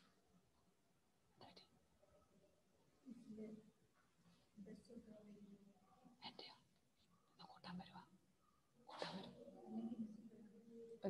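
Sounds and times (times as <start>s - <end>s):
faint indistinct speech: 4.6s - 11.0s.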